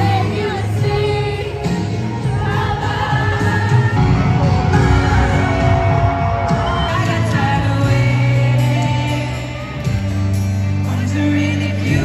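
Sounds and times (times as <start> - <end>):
crowd singing along: 0.0 - 12.0
live pop music: 0.0 - 12.0.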